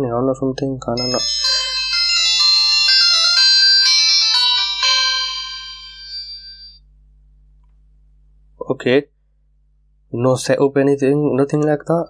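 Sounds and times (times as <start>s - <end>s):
smartwatch startup chime: 1.0s - 6.8s.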